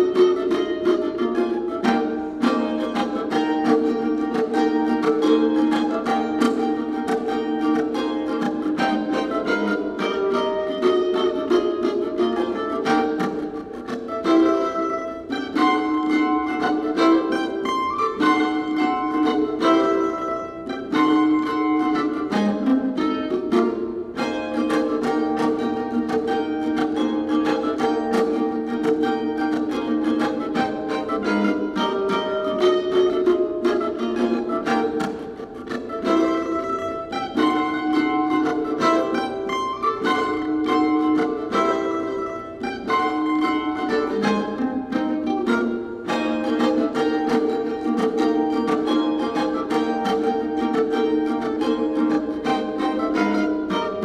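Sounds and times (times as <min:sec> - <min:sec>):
mandolin playing tremolo: 0:00.0 - 0:54.0.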